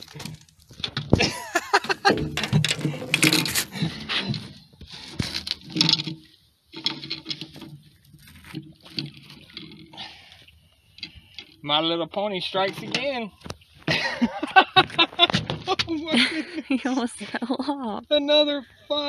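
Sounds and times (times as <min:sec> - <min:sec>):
fish splashing and thrashing in water: 0:00.0 - 0:11.6
clicks and knocks of handling rod: 0:05.1 - 0:09.9.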